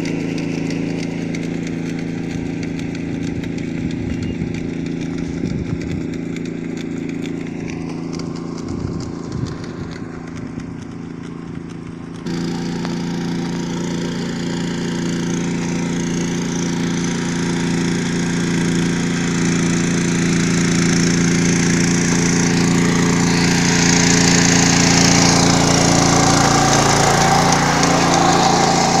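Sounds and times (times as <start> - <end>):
small engine running: 0.0 - 29.0.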